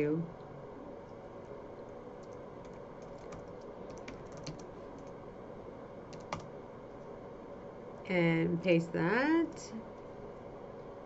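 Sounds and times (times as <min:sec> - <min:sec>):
keyboard typing: 0:02.2 - 0:05.2, 0:06.1 - 0:06.5.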